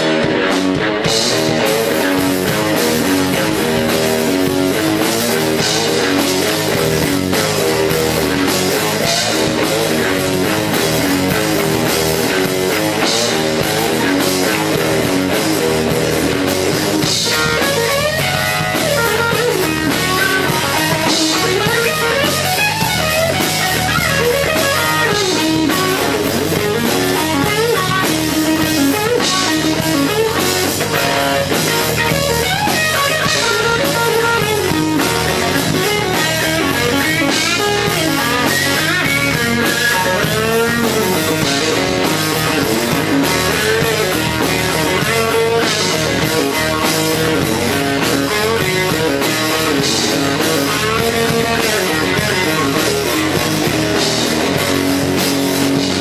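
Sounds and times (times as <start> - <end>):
drums: 0.0 - 56.0
electric guitar playing rock: 0.0 - 56.0.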